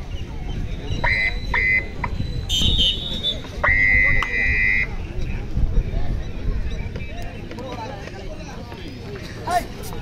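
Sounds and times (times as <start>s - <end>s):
crowd noise: 0.0s - 10.0s
whistle blasts: 1.0s - 4.9s.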